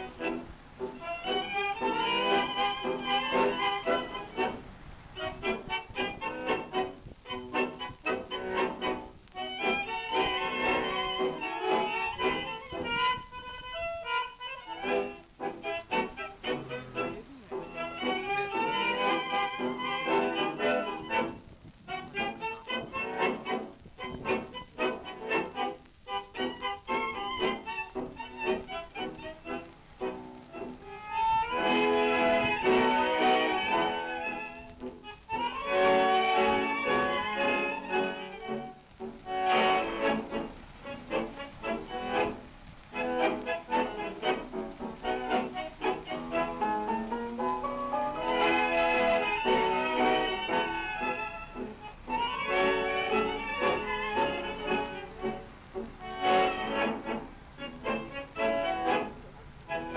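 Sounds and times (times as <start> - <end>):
tango orchestra recording: 0.0 - 59.9.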